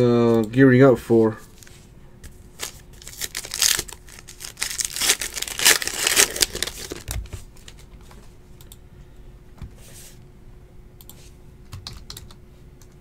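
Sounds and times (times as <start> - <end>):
foil wrapper tearing and crinkling: 2.6 - 7.8.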